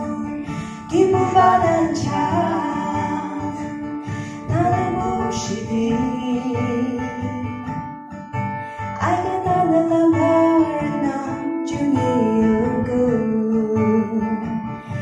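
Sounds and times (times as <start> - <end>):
woman singing: 0.0 - 8.0, 8.6 - 15.0
acoustic guitar strumming: 0.0 - 15.0.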